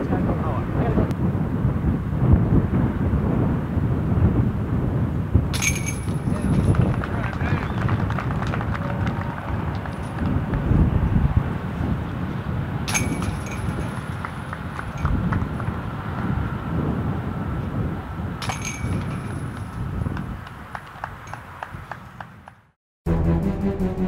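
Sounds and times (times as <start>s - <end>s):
wind on microphone: 0.0s - 22.7s
metal chains rattling: 5.6s - 6.8s, 12.9s - 15.1s, 18.4s - 19.6s.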